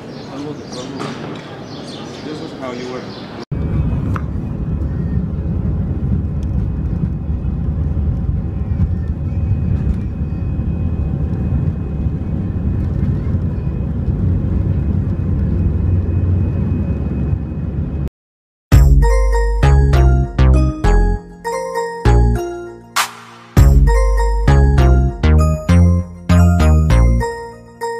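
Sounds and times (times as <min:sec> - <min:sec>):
airliner engine rumble: 0:03.6 - 0:18.1.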